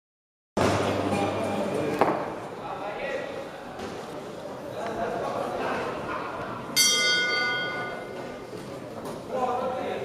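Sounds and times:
boxing ring bell ringing: 0:06.8 - 0:08.2.

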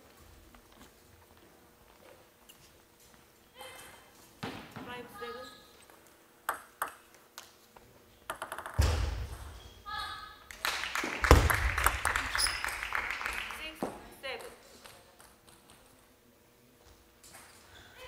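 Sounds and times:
table tennis ball clicking: 0:08.3 - 0:08.8.

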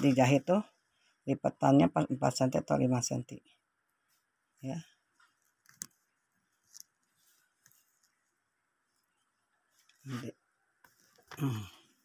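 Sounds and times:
hands rustling fabric: 0:04.0 - 0:11.3.

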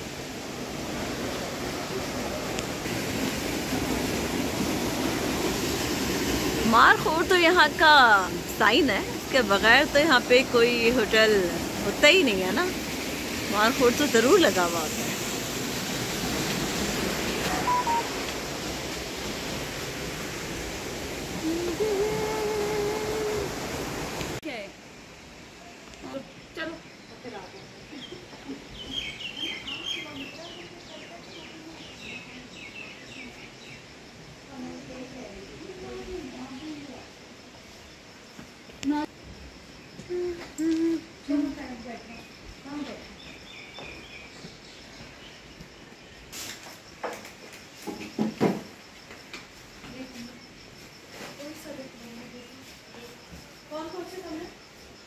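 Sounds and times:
river rushing: 0:00.0 - 0:24.4
high bird chirps: 0:17.5 - 0:18.1
high beep-like tones: 0:17.5 - 0:18.2
long level tone: 0:17.5 - 0:18.3.

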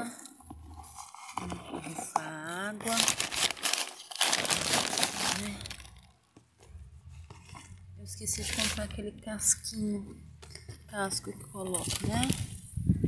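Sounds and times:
plastic bag crinkling: 0:00.8 - 0:06.2, 0:08.3 - 0:08.9.

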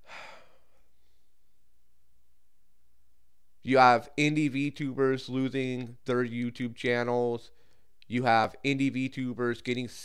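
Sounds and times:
man sighing: 0:00.0 - 0:00.8
faint low hum: 0:00.0 - 0:10.0.

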